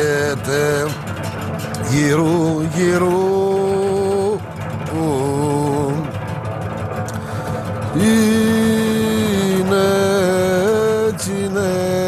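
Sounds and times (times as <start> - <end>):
sung drone: 0.0 - 12.0.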